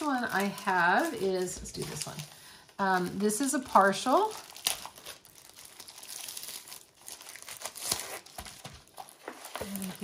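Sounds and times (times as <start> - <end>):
plastic sleeve crinkling: 0.0 - 10.0.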